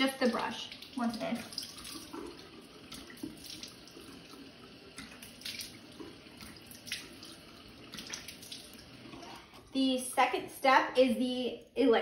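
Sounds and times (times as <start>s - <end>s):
faucet running into sink: 0.0s - 10.4s
water splashing onto face: 0.4s - 4.0s, 5.0s - 8.9s.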